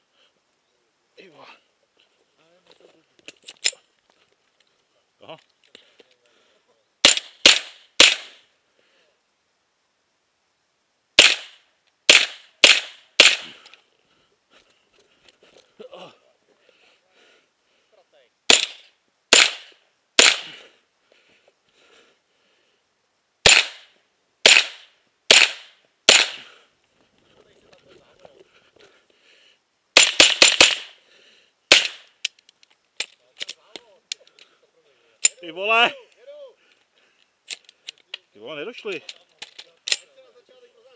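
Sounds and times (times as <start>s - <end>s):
rifle shots close up: 7.0s - 8.4s, 11.2s - 13.6s, 18.5s - 20.6s, 23.4s - 26.4s, 30.0s - 31.0s, 31.7s - 32.1s.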